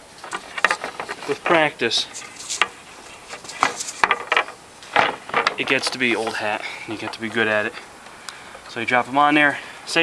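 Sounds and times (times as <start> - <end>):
metal poles clinking: 0.0 - 7.8.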